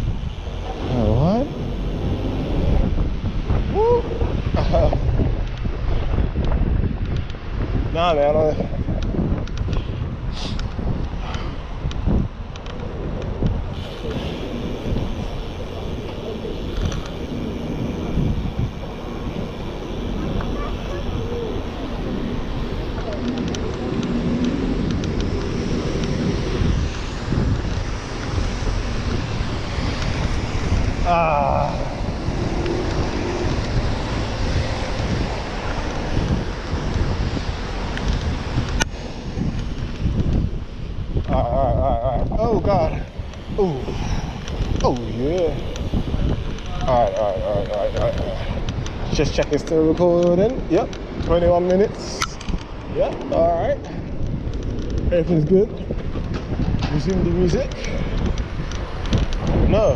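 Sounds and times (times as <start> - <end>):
traffic noise: 0.0 - 59.9
wind buffeting microphone: 0.0 - 59.9.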